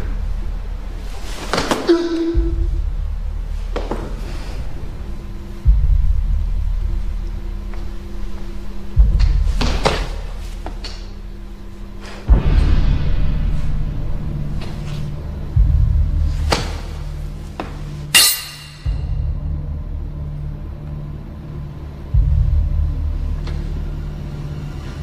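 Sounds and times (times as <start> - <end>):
low rumbling drone: 1.9 - 10.6
sharp ringing hits: 18.1 - 19.1.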